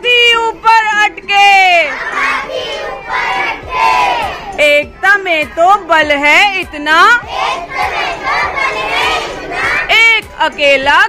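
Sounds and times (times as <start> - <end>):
children shouting a cheer: 1.9 - 4.6, 7.3 - 9.9.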